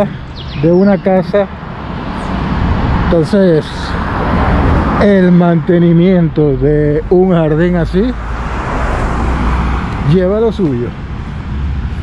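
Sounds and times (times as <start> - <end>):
car driving past: 7.0 - 10.2.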